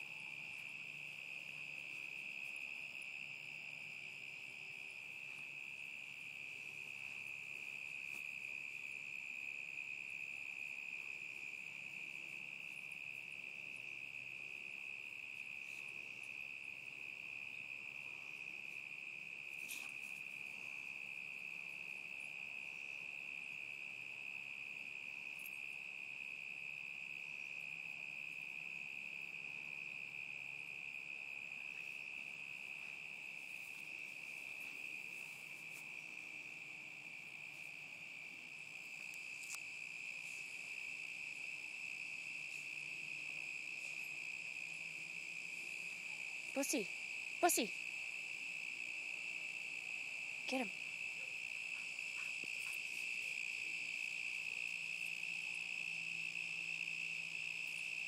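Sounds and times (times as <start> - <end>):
crickets trilling: 0.0 - 58.0.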